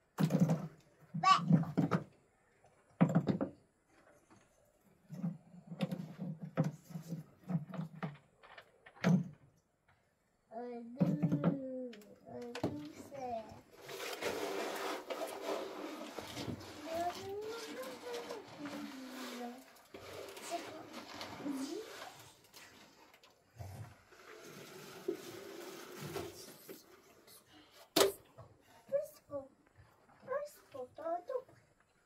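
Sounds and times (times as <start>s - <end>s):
child's voice: 1.2s - 1.8s, 10.5s - 13.6s, 16.7s - 19.7s, 20.4s - 22.3s, 28.8s - 29.5s, 30.2s - 31.6s.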